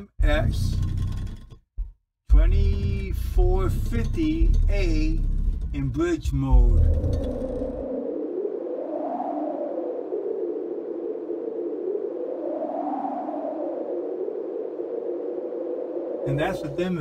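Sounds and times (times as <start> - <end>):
deep bass from subwoofer: 0.0 - 7.8
warbling electronic tone: 0.0 - 8.0.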